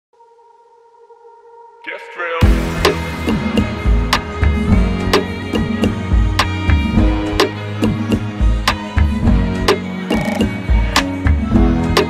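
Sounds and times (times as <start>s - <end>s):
held electronic chord: 2.2s - 12.0s.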